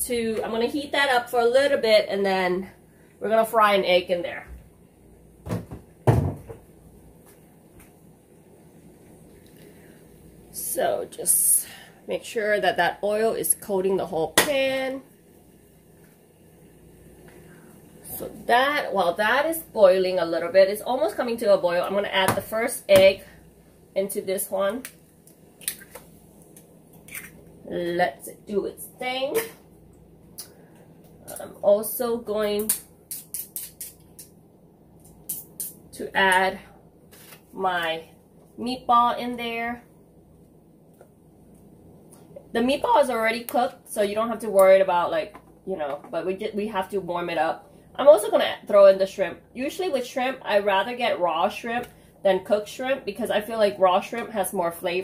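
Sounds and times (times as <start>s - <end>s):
knocks in kitchen: 5.4s - 6.7s
sharp crackling pops from cooking: 24.7s - 27.6s, 32.4s - 34.4s, 35.0s - 36.5s.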